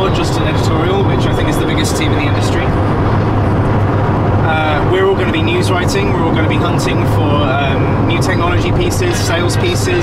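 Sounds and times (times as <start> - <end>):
van engine and road drone: 0.0 - 10.0.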